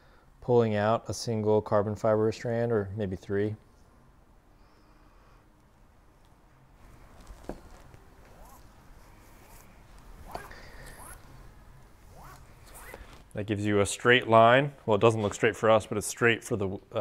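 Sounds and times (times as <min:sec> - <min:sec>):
fibre strand rasping through cloth: 0:07.1 - 0:11.4, 0:12.0 - 0:13.3.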